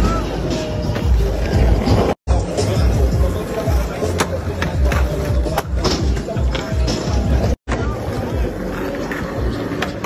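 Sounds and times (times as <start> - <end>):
skateboard wheels rolling on asphalt: 0.1 - 10.0
skateboard clacks: 3.6 - 10.0.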